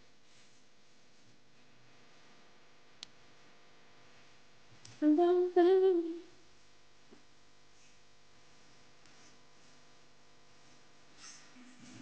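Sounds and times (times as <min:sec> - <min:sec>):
woman humming: 0:05.0 - 0:06.4.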